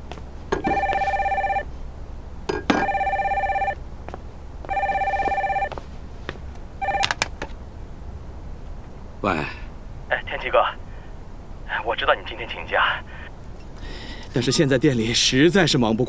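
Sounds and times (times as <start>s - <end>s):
telephone electronic ring: 0.6s - 1.7s, 2.6s - 3.8s, 4.7s - 5.8s, 6.8s - 7.2s
knocks and clicks: 6.9s - 7.6s.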